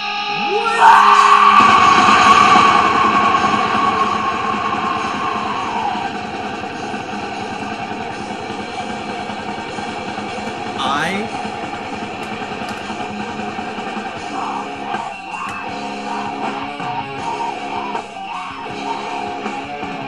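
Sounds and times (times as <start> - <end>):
distorted heavy rock music: 0.0 - 20.0.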